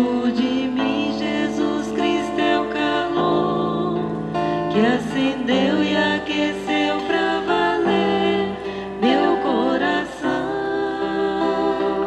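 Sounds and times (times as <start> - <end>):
acoustic guitar: 0.0 - 12.0
person singing a hymn: 0.0 - 12.0.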